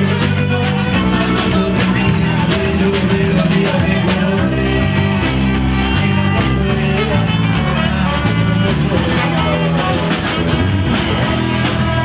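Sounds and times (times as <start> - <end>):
guitars: 0.0 - 12.0
live band playing: 0.0 - 12.0.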